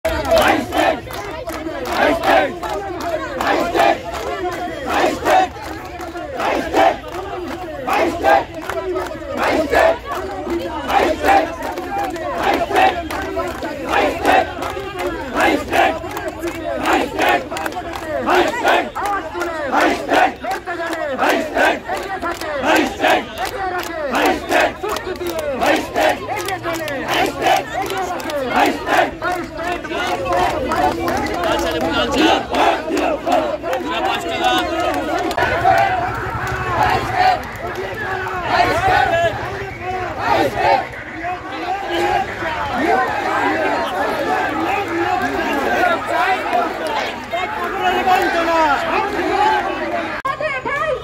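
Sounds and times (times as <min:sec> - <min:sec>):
crowd chanting: 0:00.0 - 0:51.0.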